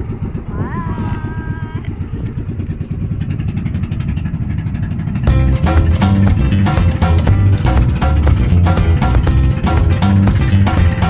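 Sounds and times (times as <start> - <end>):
boat engine chugging: 0.0 - 11.0
music: 5.3 - 11.0.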